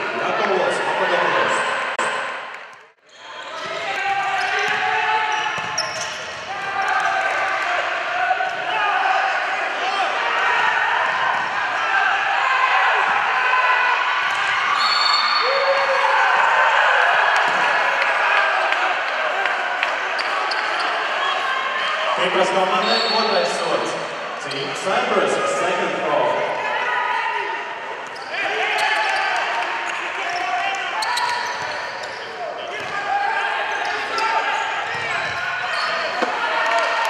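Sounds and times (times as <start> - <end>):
ball bouncing on hardwood court: 5.6 - 6.5.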